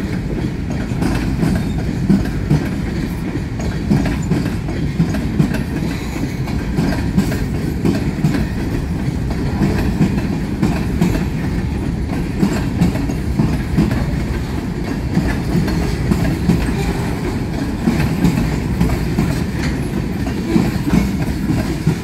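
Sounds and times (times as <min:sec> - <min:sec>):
train wheels rumbling on rail: 0:00.0 - 0:22.0
wheels knocking on rail joints: 0:00.0 - 0:22.0.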